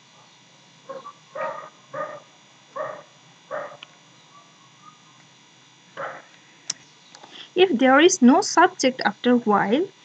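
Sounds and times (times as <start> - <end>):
dog barking: 0.9 - 4.6, 6.0 - 6.3.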